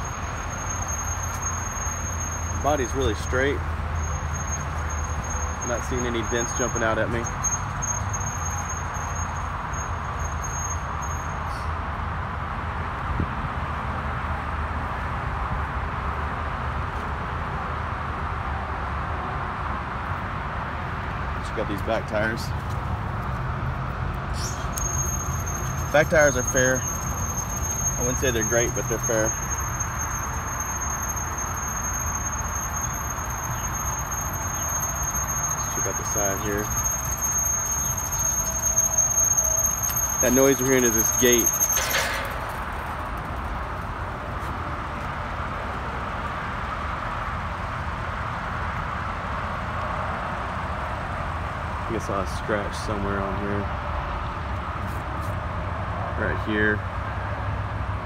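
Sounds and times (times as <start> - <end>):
gate squealing: 0.0 - 11.7, 24.3 - 43.2.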